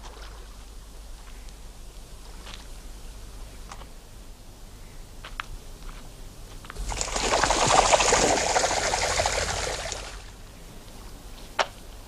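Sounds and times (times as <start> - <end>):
water splashing and churning: 6.8 - 10.4.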